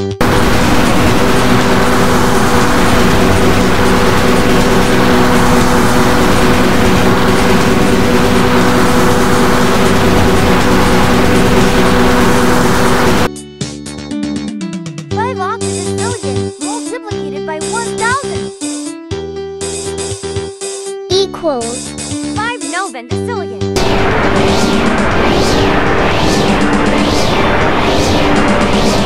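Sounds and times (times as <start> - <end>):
harsh rushing noise: 0.0 - 13.3, 23.8 - 29.0
steady humming tones: 0.0 - 13.3, 23.8 - 29.0.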